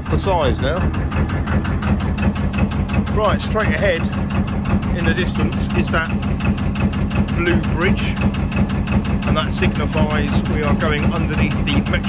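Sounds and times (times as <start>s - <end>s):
boat diesel engine running: 0.0s - 12.0s.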